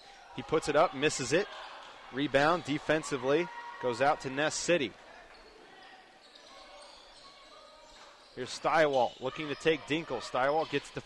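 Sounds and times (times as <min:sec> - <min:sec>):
crowd chatter: 0:00.0 - 0:11.0
basketball court noise: 0:00.1 - 0:11.0.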